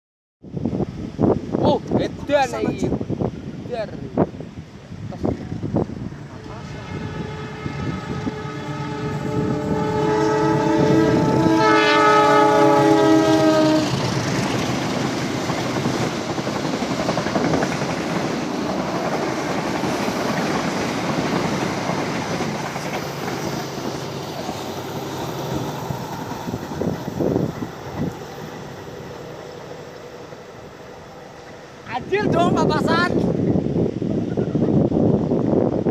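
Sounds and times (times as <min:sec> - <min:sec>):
train horn blast: 0:06.2 - 0:14.2
train carriages clattering on rails: 0:14.1 - 0:27.0.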